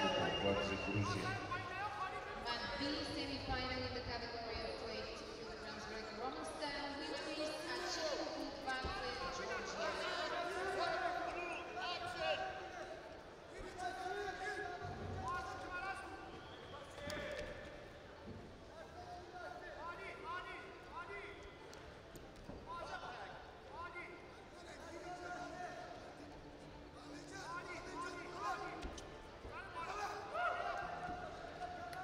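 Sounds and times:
voices shouting: 0.0 - 1.5.

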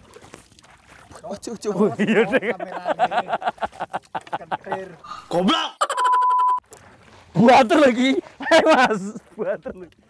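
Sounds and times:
man laughing heartily: 1.9 - 4.9, 5.6 - 6.2, 8.4 - 9.3
flat electronic beep: 5.9 - 6.6.

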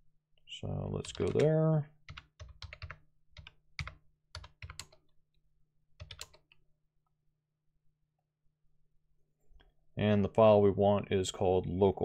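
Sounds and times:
typing on computer keyboard: 1.0 - 5.1, 6.0 - 6.6.

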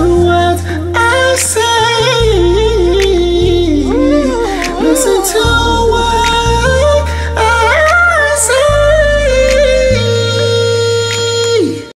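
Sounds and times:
backing beat with bass: 0.0 - 11.9
man singing long note: 0.0 - 11.9.

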